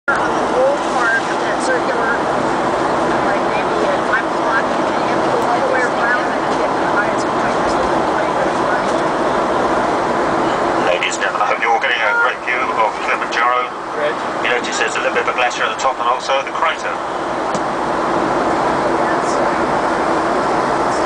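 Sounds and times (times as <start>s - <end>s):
people talking: 0.0s - 2.3s, 2.9s - 9.2s, 10.5s - 17.0s, 18.8s - 19.8s, 20.4s - 21.0s
aircraft cabin noise: 0.1s - 21.0s.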